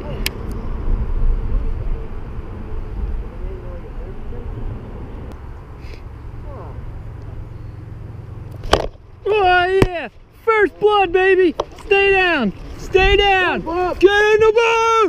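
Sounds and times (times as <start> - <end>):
low rumbling noise: 0.0 - 15.0.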